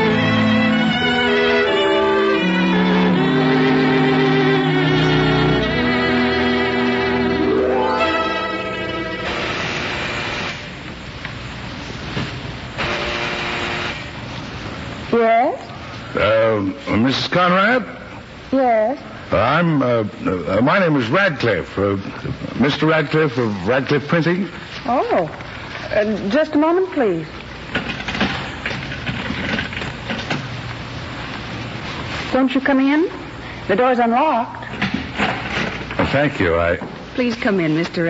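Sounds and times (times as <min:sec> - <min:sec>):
low hum and hiss: 0:00.0 - 0:38.0
electric doorbell buzzer: 0:12.8 - 0:14.1.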